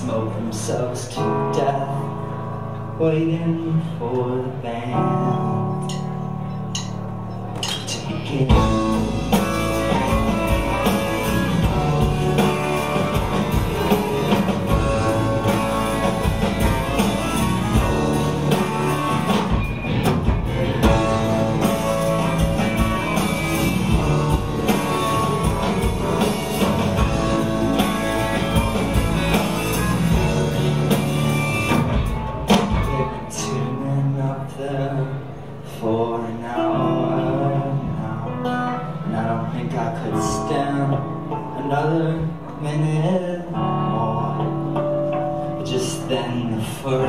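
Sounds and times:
live instrumental rock music: 0.0s - 47.0s.

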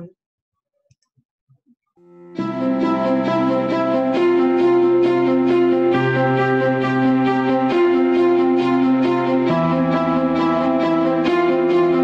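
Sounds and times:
instrumental background music: 2.0s - 12.0s.

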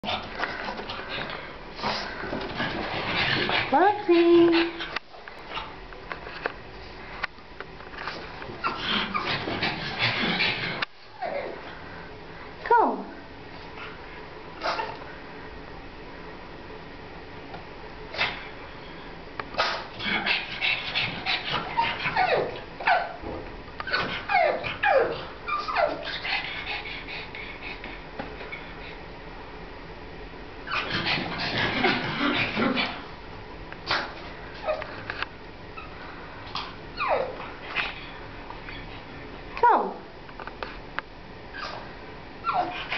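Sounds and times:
dog panting: 0.9s - 5.7s, 23.9s - 29.0s
dog whining: 8.6s - 11.6s, 19.6s - 23.2s, 23.8s - 27.1s, 37.0s - 39.0s, 41.5s - 41.8s, 42.4s - 42.9s.

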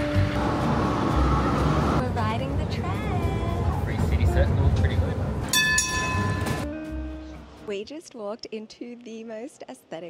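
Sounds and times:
tram running rumble: 0.0s - 6.6s
bell-like chime: 5.5s - 6.6s.

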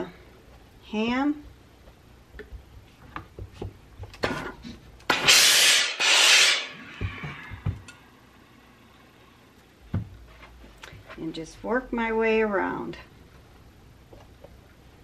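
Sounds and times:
steam iron hissing: 5.3s - 7.6s.

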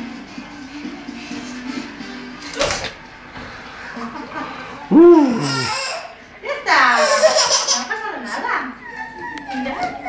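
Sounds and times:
baby squealing and laughing: 4.9s - 6.2s.

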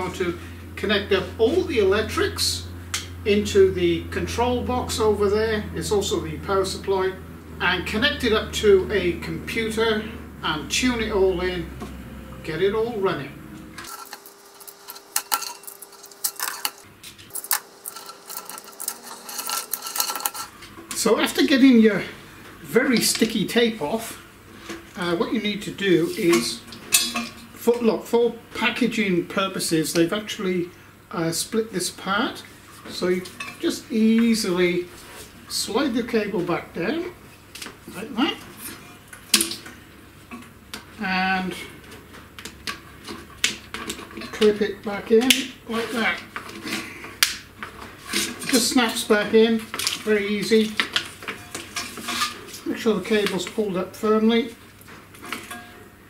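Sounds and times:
plastic chain clicks and rattles: 13.9s - 20.5s.

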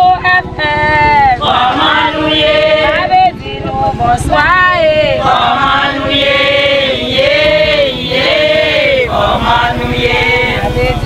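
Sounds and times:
group of men and women singing: 0.3s - 11.0s.

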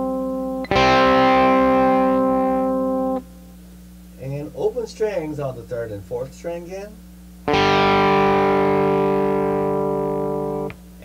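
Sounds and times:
electric guitar double-stop ringing: 0.0s - 3.2s, 7.5s - 10.8s.

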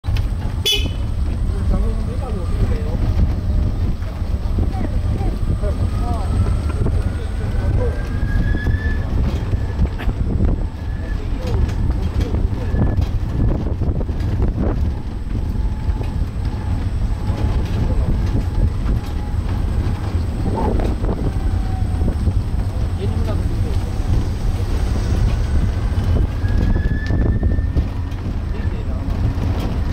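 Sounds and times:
cart rolling on paved path: 0.0s - 29.9s
wind and road noise: 0.0s - 29.9s
short high horn toot: 0.6s - 1.1s
faint voices: 1.2s - 14.3s.

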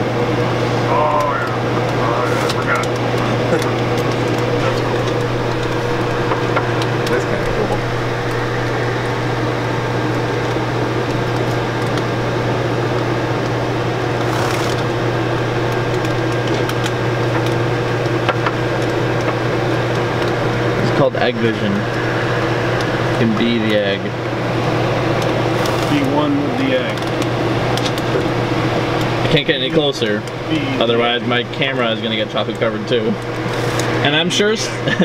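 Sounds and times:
machine humming with high tone: 0.0s - 35.0s.

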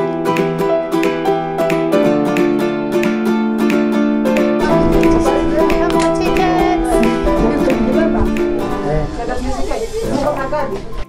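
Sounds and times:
light background music: 0.0s - 11.0s
people talking indistinctly: 4.6s - 11.0s.

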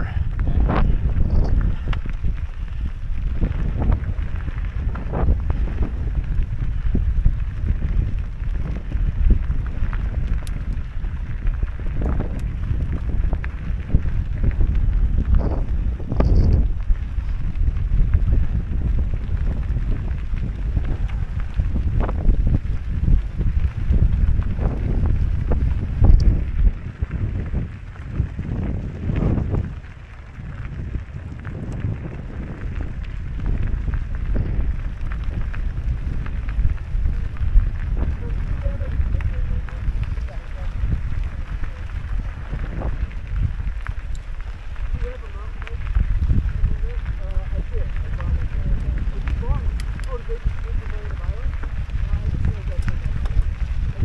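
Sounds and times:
tyres rolling on gravel: 0.0s - 54.0s
wind buffeting microphone: 0.0s - 54.0s.

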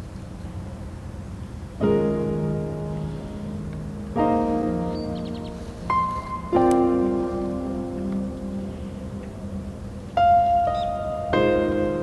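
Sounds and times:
soft piano music: 1.4s - 12.0s.

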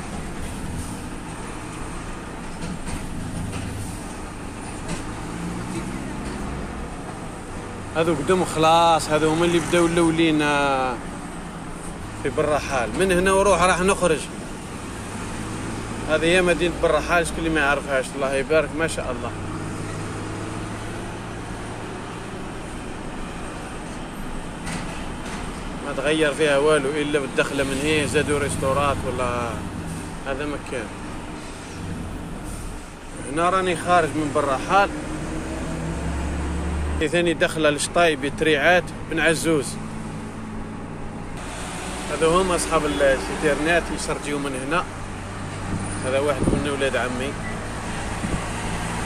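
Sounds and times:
road noise: 0.0s - 49.0s.

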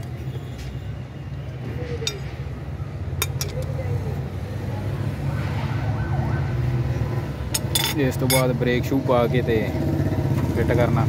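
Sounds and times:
steel bar clinking on gears: 7.6s - 8.6s.

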